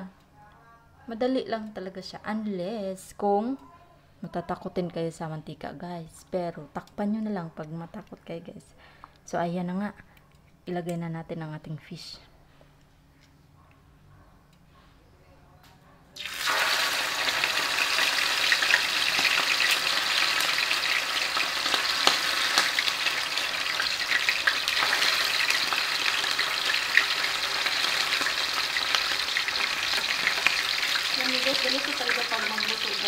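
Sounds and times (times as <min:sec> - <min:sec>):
fish sizzling in hot oil: 0:16.2 - 0:33.0
oil spattering crackles: 0:16.2 - 0:33.0.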